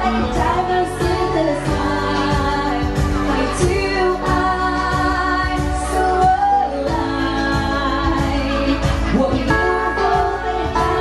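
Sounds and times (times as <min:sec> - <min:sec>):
woman singing into microphone: 0:00.0 - 0:11.0.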